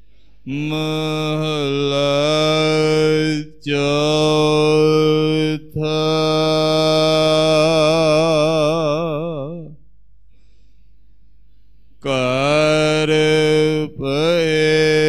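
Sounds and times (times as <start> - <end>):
person chanting into a microphone: 0.5 - 9.8, 12.0 - 15.0.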